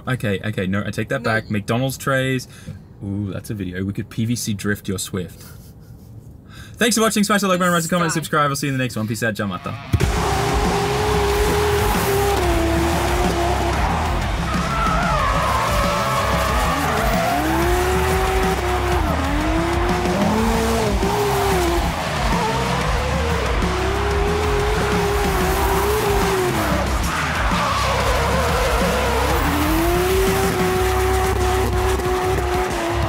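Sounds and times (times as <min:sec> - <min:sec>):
car engine revving: 0:09.7 - 0:33.0
tyre squeal: 0:09.7 - 0:33.0
music: 0:09.9 - 0:33.0.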